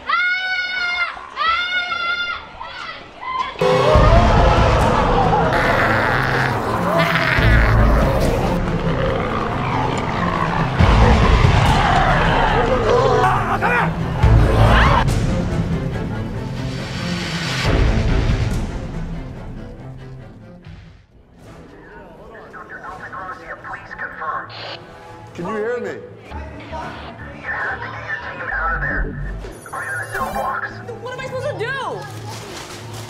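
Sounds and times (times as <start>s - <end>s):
human cries and shrieks: 11.1s - 14.0s
person talking over radio: 22.3s - 24.8s, 26.8s - 30.9s.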